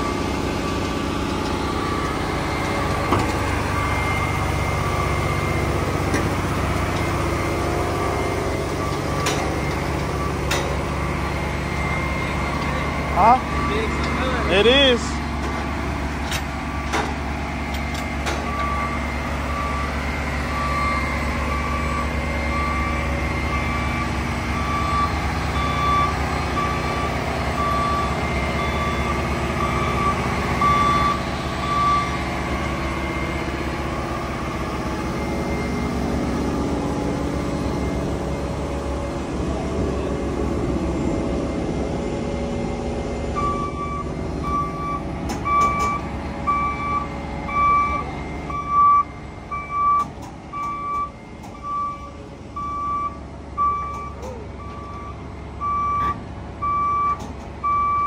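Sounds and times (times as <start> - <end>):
diesel engine running: 0.0 - 58.0
travel alarm beeping: 1.8 - 6.0, 7.0 - 15.0, 18.4 - 33.6, 43.3 - 58.0
metal clanks and knocks: 8.9 - 10.9, 15.4 - 18.7.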